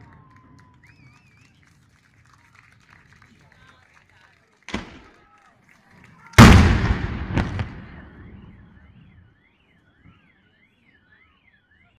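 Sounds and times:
firework cracks: 0:04.7 - 0:05.1, 0:06.4 - 0:08.6.

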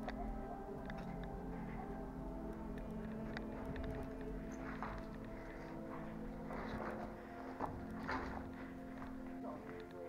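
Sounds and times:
background music: 0:00.0 - 0:10.0
footsteps crunching on rubble: 0:03.5 - 0:09.8.

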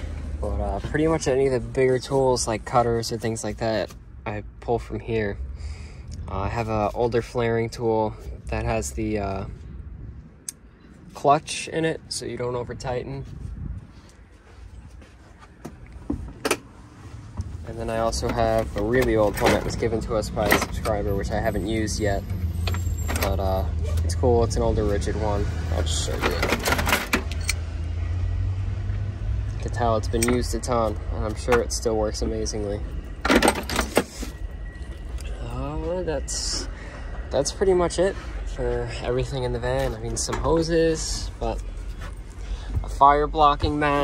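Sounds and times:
rummaging through tools: 0:17.9 - 0:22.0, 0:25.8 - 0:27.6, 0:33.1 - 0:35.4
tools and plastic bins clicking: 0:26.1 - 0:27.6.

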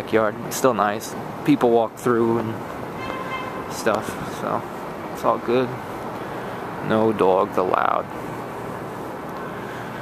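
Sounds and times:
city noise rush: 0:00.0 - 0:10.0.

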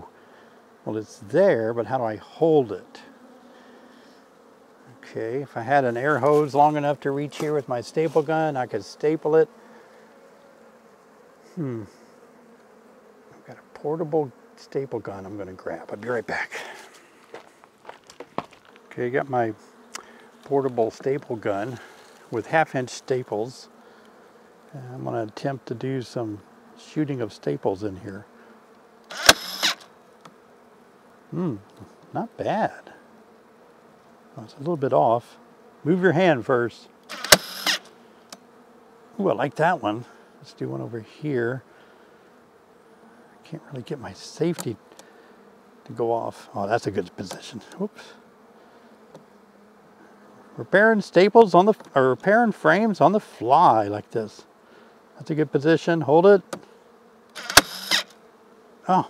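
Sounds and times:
honey bees humming: 0:00.0 - 0:59.0
staple gun firing into wood: 0:29.1 - 0:29.8, 0:37.1 - 0:37.8, 0:57.4 - 0:58.1.

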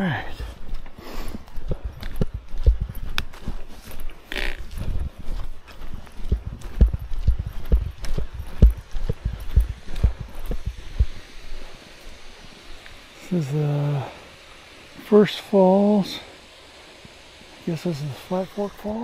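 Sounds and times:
footsteps on dry leaves: 0:00.0 - 0:13.9.

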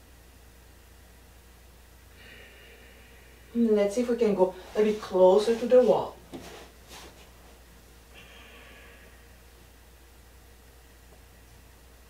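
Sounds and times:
low steady hum: 0:00.0 - 0:12.0
soft breath out: 0:02.1 - 0:03.5, 0:08.1 - 0:09.4.

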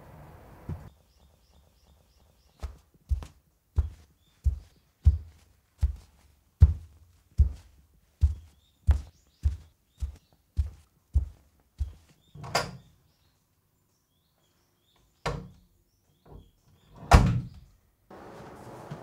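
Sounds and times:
footsteps down stairs: 0:00.6 - 0:12.3.

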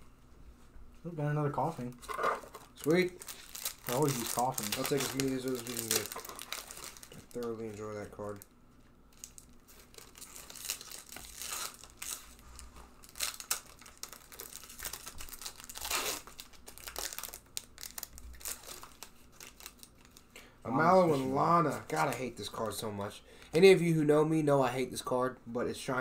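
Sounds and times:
foil wrappers crinkling and tearing: 0:01.8 - 0:08.5, 0:09.1 - 0:20.3.

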